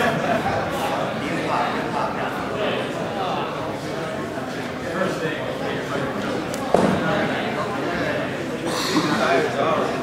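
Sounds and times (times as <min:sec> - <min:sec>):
echoing chatter of onlookers: 0:00.0 - 0:10.0.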